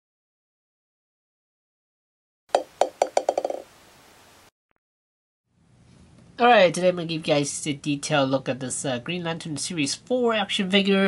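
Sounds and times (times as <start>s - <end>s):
ball bouncing: 2.5s - 3.7s.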